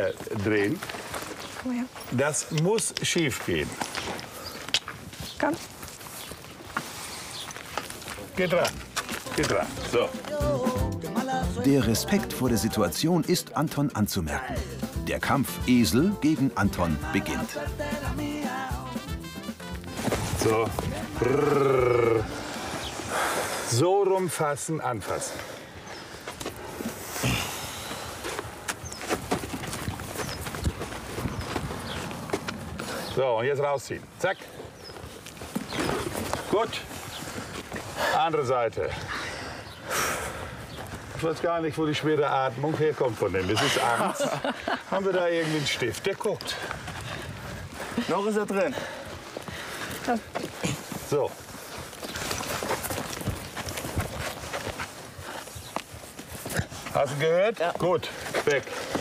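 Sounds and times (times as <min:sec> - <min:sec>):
hooves and shoes scuffing on gravel: 0:00.0 - 0:10.6, 0:15.2 - 0:21.6, 0:24.8 - 0:38.5, 0:40.6 - 0:59.0.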